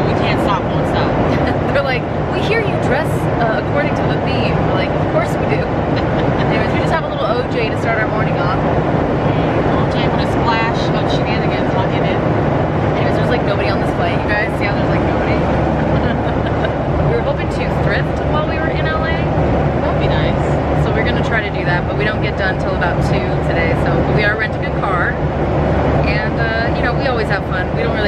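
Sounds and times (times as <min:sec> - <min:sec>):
airliner cabin engine drone: 0:00.0 - 0:28.0
indistinct chatter: 0:00.0 - 0:28.0.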